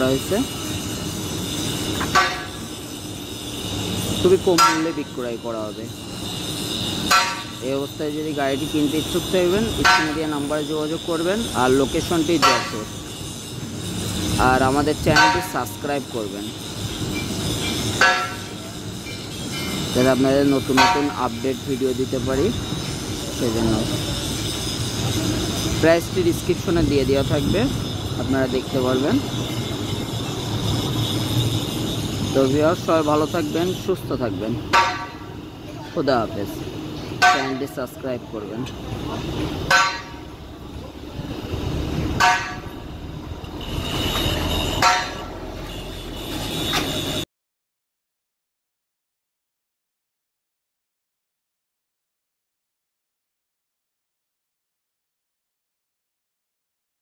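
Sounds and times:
traffic rumble: 0.0s - 47.2s
vehicle horn toot: 43.6s - 47.2s.

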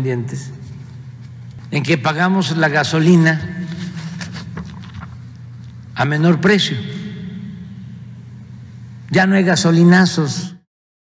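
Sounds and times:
echo of spoken words: 0.0s - 0.9s, 1.6s - 4.4s, 5.9s - 10.7s
low hum: 0.0s - 10.5s.

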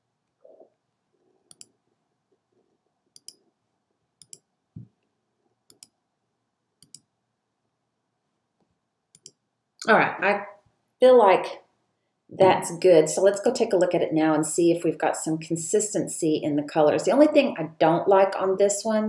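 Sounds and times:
computer mouse clicks: 1.5s - 1.7s, 3.2s - 3.4s, 4.2s - 4.5s, 5.7s - 6.0s, 6.8s - 7.1s, 9.1s - 9.4s.

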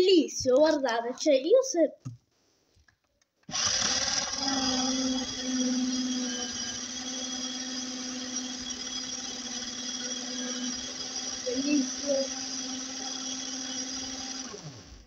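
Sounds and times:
small electric motor whining: 3.5s - 15.0s.

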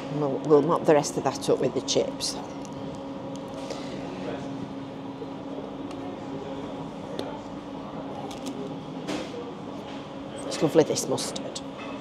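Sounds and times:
low machine hum: 0.0s - 12.0s.

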